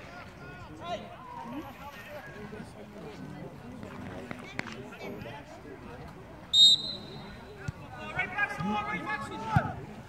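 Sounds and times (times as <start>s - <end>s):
faint voices: 0.0s - 10.0s
referee's whistle blast: 6.5s - 7.4s.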